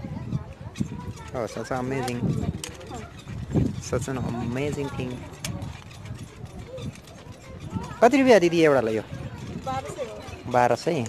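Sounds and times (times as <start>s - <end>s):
people talking: 0.0s - 3.1s, 3.9s - 5.7s.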